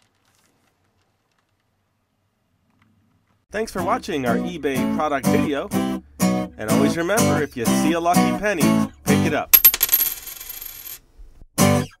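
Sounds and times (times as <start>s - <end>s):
coin rattling on hard surface: 9.6s - 11.0s.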